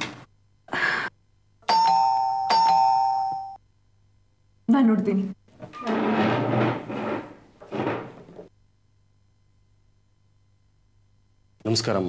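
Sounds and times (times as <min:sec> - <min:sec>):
electronic doorbell ding-dong: 0:01.7 - 0:03.6.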